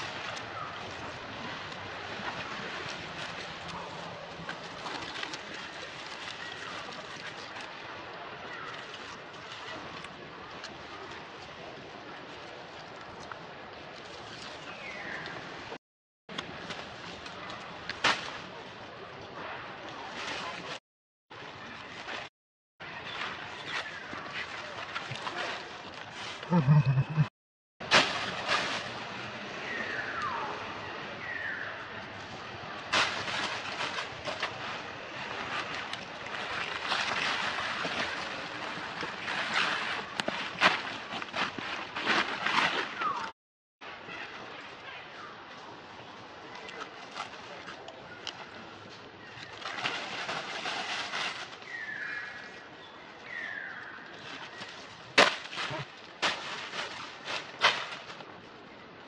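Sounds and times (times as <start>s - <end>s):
monkey calls: 26.5s - 27.3s
dry leaves crackling and rustling: 49.4s - 52.5s, 55.2s - 58.3s.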